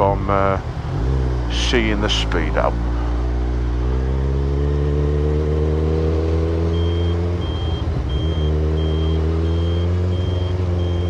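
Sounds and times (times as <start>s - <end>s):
high electronic beep: 6.6s - 11.0s.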